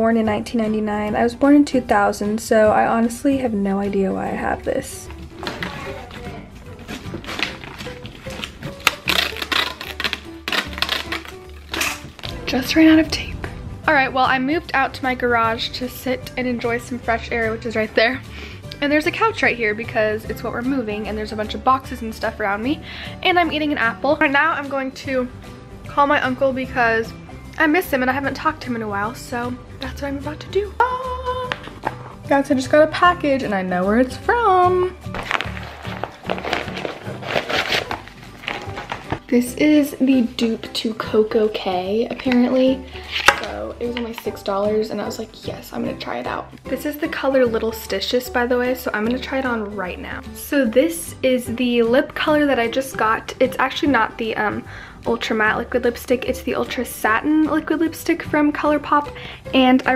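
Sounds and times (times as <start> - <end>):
background music: 0.0 - 59.9
envelope rustling and tearing: 5.4 - 12.4, 35.1 - 39.3, 43.1 - 43.5
packing tape pulled off roll: 5.4 - 12.4, 35.1 - 39.3.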